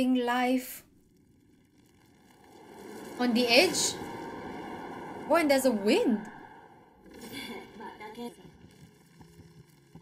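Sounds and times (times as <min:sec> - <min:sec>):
faint anime dialogue: 0:05.2 - 0:08.6.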